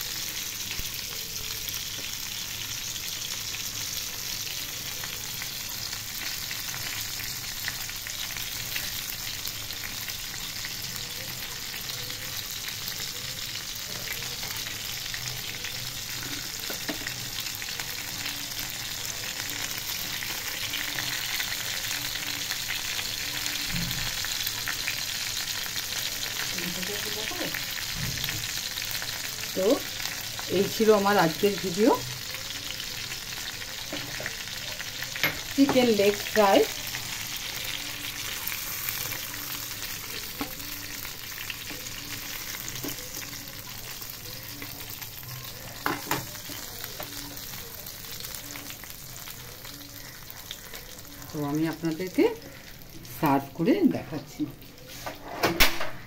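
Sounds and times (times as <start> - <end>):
chicken sizzling in oil: 0.0 - 56.0.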